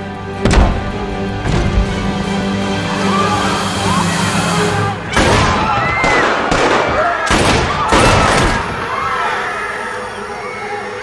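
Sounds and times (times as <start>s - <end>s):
orchestral music: 0.0s - 6.8s
pistol shots: 5.2s - 8.6s
voices crying out: 7.0s - 11.0s.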